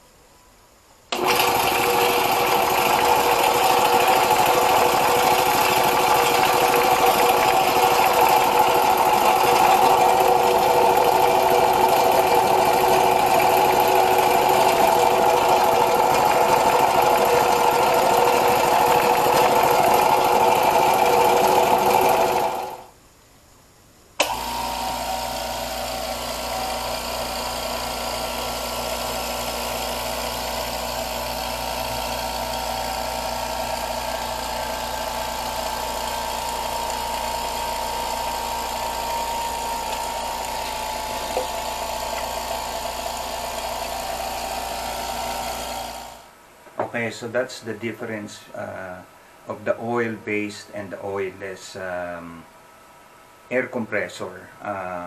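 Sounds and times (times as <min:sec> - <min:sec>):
oiled air compressor running loudly: 0:01.1 - 0:22.9, 0:24.2 - 0:46.3
quieter air compressor running: 0:01.1 - 0:23.0, 0:24.2 - 0:46.4.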